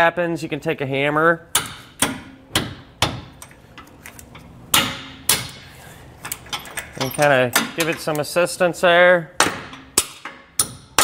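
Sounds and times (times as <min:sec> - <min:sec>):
hammer striking metal bolt: 0:01.5 - 0:03.5, 0:04.7 - 0:05.6, 0:09.4 - 0:11.0.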